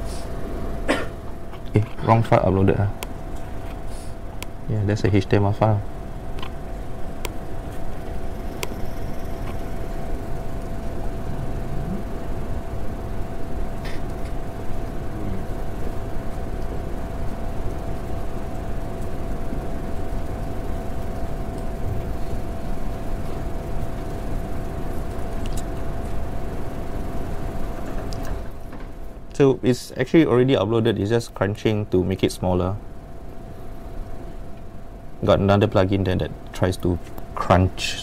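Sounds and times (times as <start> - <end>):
constant low hum: 0.0 - 38.0.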